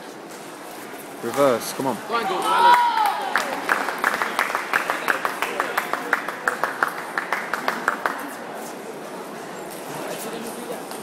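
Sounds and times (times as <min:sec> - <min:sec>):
sports hall hubbub: 0:00.0 - 0:11.0
hand clapping: 0:02.4 - 0:08.4.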